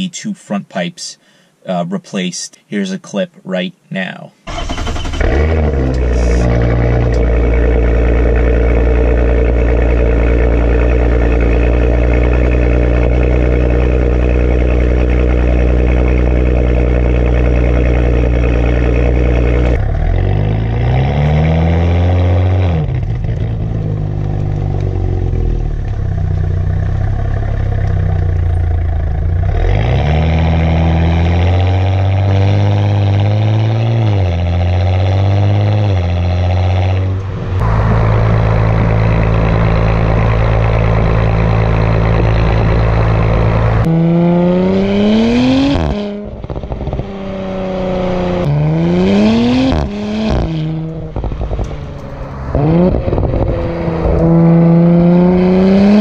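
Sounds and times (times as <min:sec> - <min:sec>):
car exhaust revving: 0:04.5 - 0:56.0.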